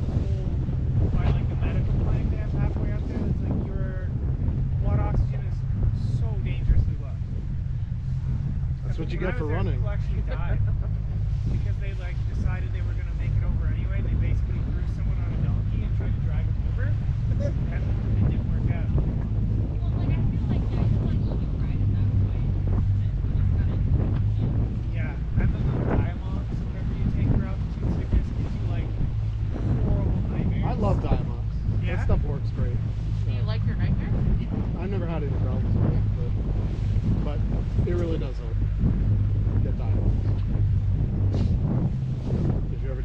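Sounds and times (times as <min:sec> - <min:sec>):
outboard motor droning: 0:00.0 - 0:43.0
wind buffeting microphone: 0:00.0 - 0:43.0
faint voices: 0:08.8 - 0:38.7.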